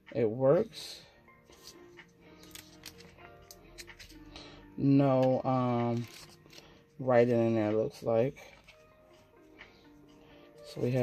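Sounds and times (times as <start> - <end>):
faint background music: 0.0 - 11.0
pages flipping clicks: 2.4 - 4.2, 5.2 - 6.7.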